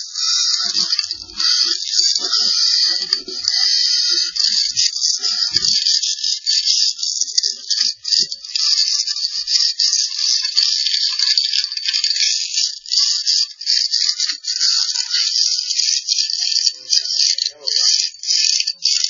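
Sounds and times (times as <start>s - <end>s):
camera head scraping and rattling in flue: 0.0s - 19.0s.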